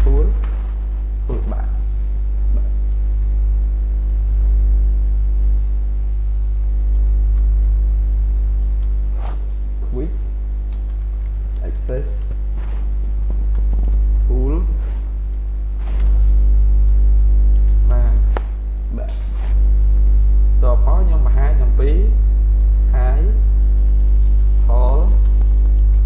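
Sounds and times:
electrical mains hum: 0:00.0 - 0:26.0.

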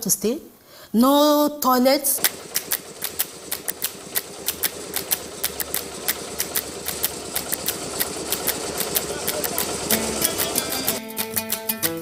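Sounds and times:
concrete mixer engine humming: 0:02.2 - 0:11.0
sharp clicks: 0:02.2 - 0:11.0.

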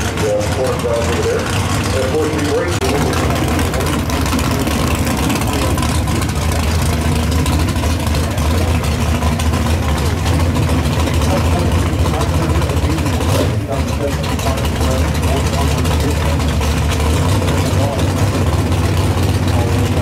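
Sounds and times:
loud car engine idling: 0:00.0 - 0:20.0.

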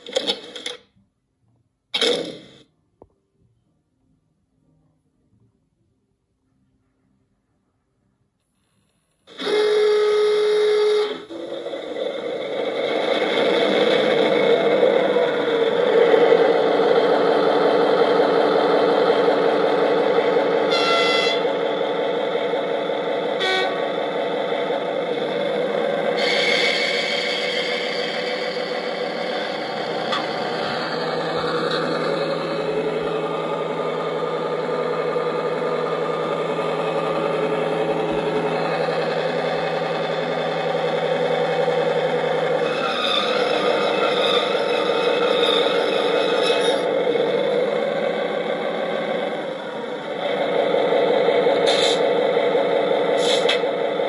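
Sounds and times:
locomotive horn blast: 0:09.4 - 0:11.3, 0:20.6 - 0:21.6, 0:23.3 - 0:24.0
diesel engine running: 0:09.4 - 0:54.0
brief tones: 0:20.6 - 0:21.6.

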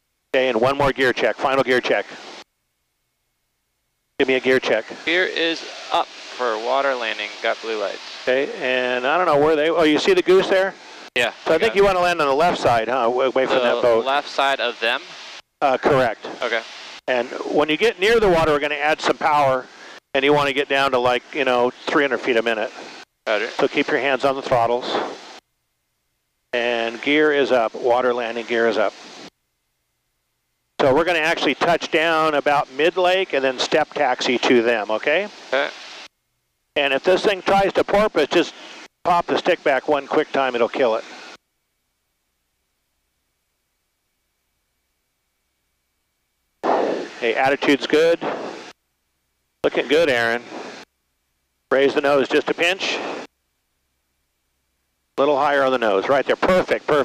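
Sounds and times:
faint hiss: 0:00.0 - 0:57.0
man talking: 0:00.4 - 0:02.2, 0:04.2 - 0:25.2, 0:26.6 - 0:29.0, 0:30.8 - 0:35.8, 0:36.8 - 0:41.1, 0:47.2 - 0:48.4, 0:49.6 - 0:50.5, 0:51.7 - 0:53.2, 0:55.2 - 0:57.0
man's voice: 0:04.2 - 0:15.0.

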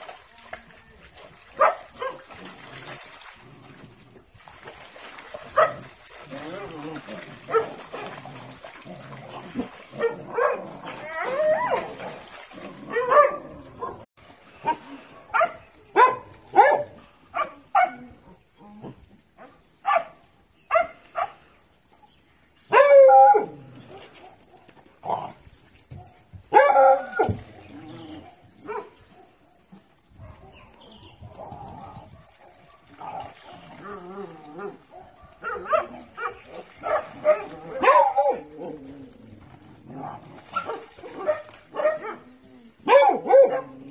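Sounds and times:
dogs barking: 0:01.6 - 0:02.2, 0:05.5 - 0:05.9, 0:07.4 - 0:08.2, 0:10.0 - 0:10.8, 0:12.9 - 0:14.0, 0:14.6 - 0:18.0, 0:19.4 - 0:21.4, 0:22.7 - 0:23.6, 0:25.9 - 0:27.4, 0:28.6 - 0:29.6, 0:32.0 - 0:33.2, 0:34.6 - 0:38.5, 0:40.5 - 0:43.9.

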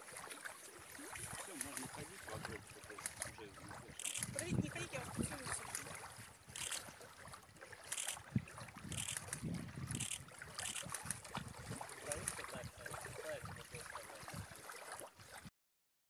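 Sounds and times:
shallow water splashing: 0:00.0 - 0:15.5.

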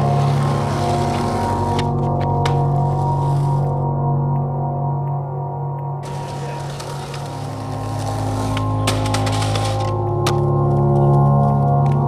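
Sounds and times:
skateboard wheels rolling: 0:00.0 - 0:03.8, 0:06.0 - 0:12.0
background music: 0:00.0 - 0:12.0.

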